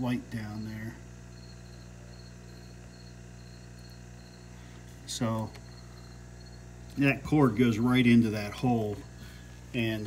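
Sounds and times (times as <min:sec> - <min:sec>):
cricket chirping: 0:00.0 - 0:09.2
low electrical hum: 0:00.0 - 0:10.0.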